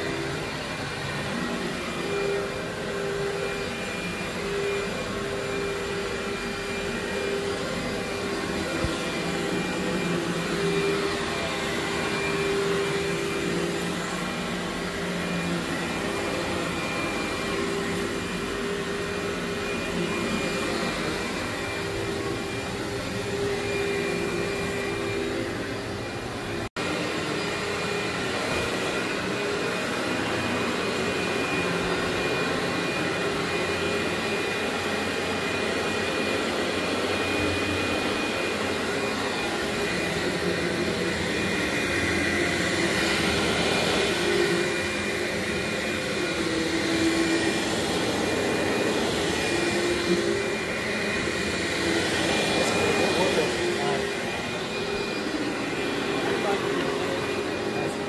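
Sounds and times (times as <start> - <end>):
vacuum cleaner running on carpet: 0.0 - 58.0.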